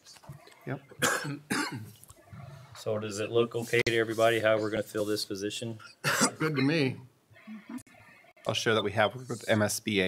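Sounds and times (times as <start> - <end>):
person coughing: 1.0 - 1.9, 5.8 - 6.8.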